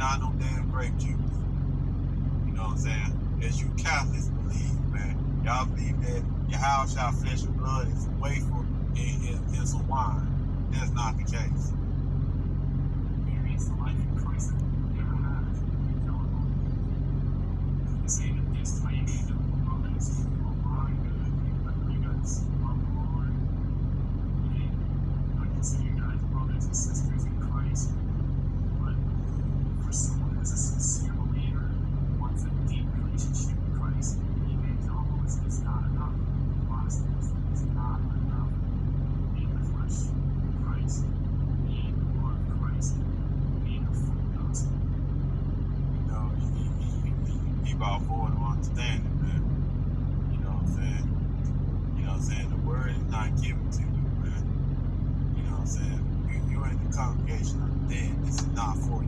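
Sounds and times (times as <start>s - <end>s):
muffled speech from phone speaker: 0.0s - 1.3s, 2.5s - 11.7s, 13.2s - 16.6s, 18.0s - 23.4s, 24.4s - 24.8s, 25.4s - 28.0s, 28.7s - 29.0s, 29.8s - 38.6s, 39.3s - 43.0s, 43.6s - 44.7s, 46.0s - 49.5s, 50.3s - 51.1s, 52.0s - 54.4s, 55.4s - 59.0s
steady low hum: 0.0s - 59.0s.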